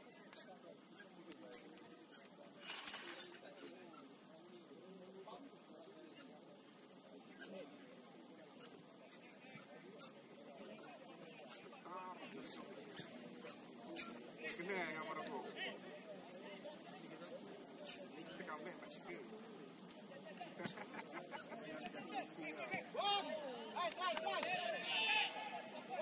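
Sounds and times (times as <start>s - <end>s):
distant crowd voices and calls: 0.0s - 26.0s.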